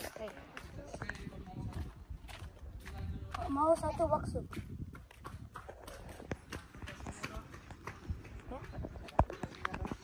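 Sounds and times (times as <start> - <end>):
footsteps on brick paving: 0.0 - 10.0.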